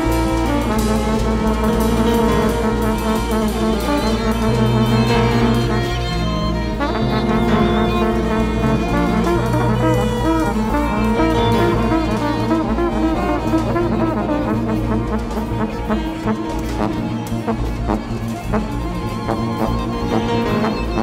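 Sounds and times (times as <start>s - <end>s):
held horn lines: 0.0s - 21.0s
short sharp notes: 0.0s - 21.0s.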